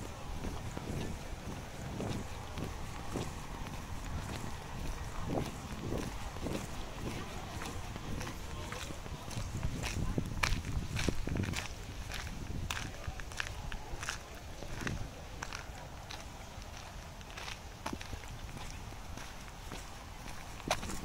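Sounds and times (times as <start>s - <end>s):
footsteps on dirt path: 0.0s - 21.0s.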